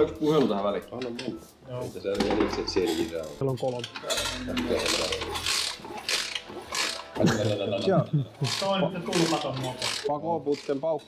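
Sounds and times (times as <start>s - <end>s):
motorbike kick-starter ratcheting: 3.6s - 7.2s, 8.4s - 10.8s.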